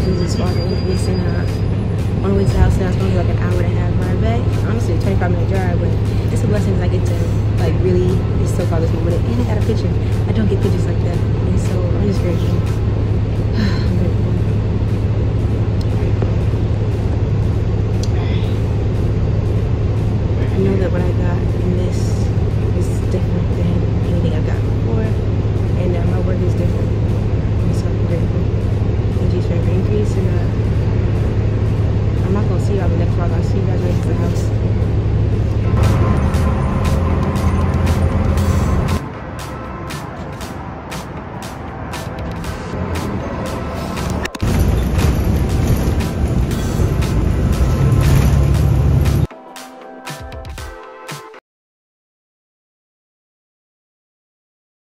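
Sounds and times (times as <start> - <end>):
bus engine drone: 0.0 - 49.3.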